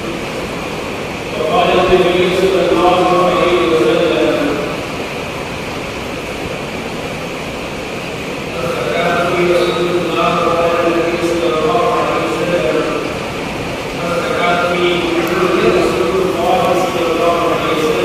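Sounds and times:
man chanting into a microphone: 14.0 - 18.0.

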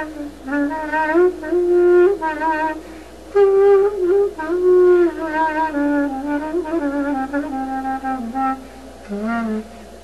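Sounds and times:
clarinet playing folk phrase: 0.0 - 9.7.

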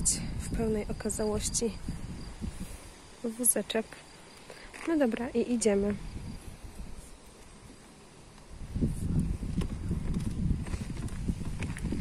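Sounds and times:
pram wheels rumbling on asphalt: 9.1 - 12.0.

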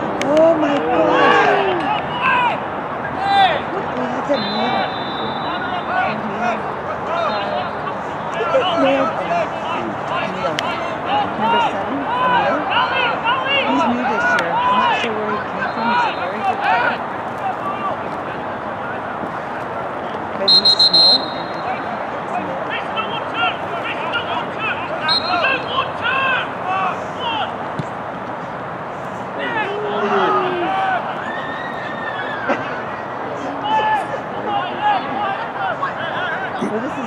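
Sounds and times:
distant shouting and chatter: 0.0 - 37.0
referee's whistle blast: 4.3 - 6.0, 20.4 - 21.8, 25.0 - 25.8.

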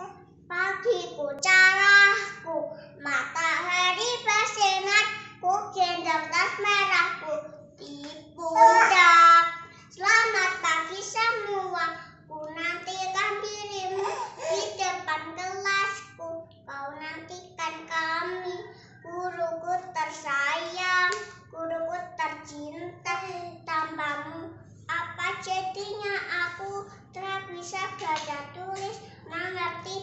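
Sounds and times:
child singing alone: 8.4 - 9.1.

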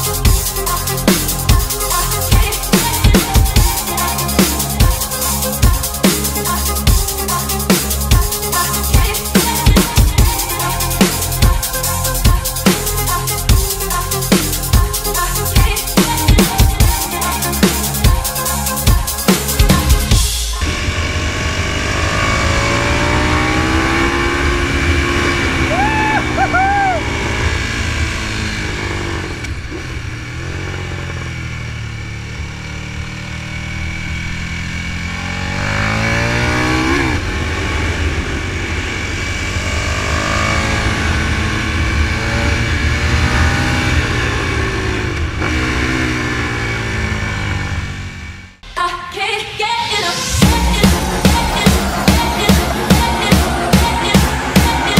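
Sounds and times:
motorcycle engine revving: 0.0 - 48.7, 50.2 - 54.9.

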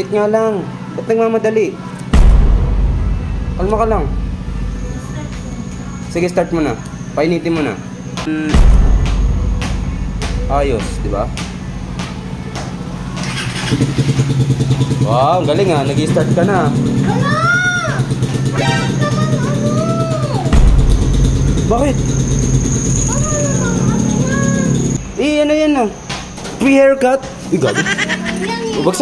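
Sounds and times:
motorcycle engine rumbling: 1.8 - 28.8
motorcycle starter whine: 11.5 - 27.0.

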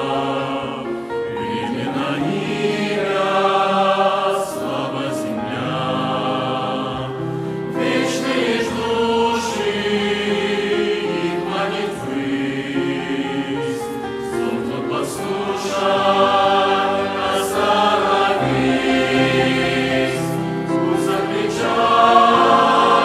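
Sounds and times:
mixed choir singing a hymn: 0.0 - 23.0.

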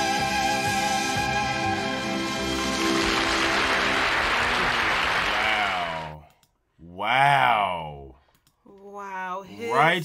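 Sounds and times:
audience applauding: 2.4 - 6.2.

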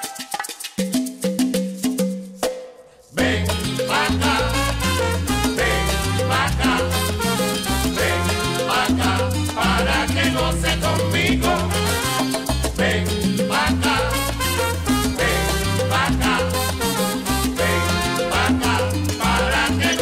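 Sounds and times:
instrumental salsa band: 0.0 - 20.0.

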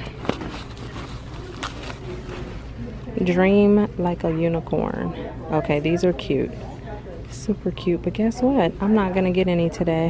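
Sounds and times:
bubble wrap rustling and crinkling: 0.0 - 2.9.

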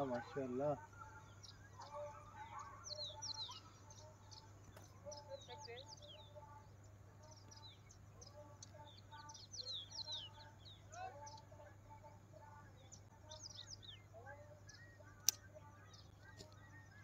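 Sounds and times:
birds chirping: 0.0 - 17.0
sharp click: 15.2 - 15.4.

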